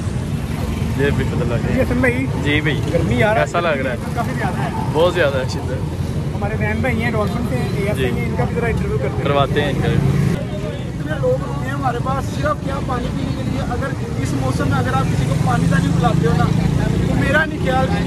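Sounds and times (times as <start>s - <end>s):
busy street traffic rumble: 0.0s - 18.0s
people talking indistinctly: 0.0s - 18.0s.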